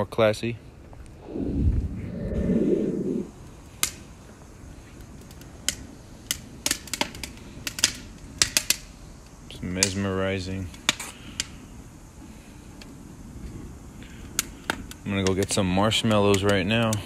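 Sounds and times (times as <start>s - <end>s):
low rumbling noise: 1.0s - 3.6s
wood fire crackling and popping: 3.3s - 17.0s.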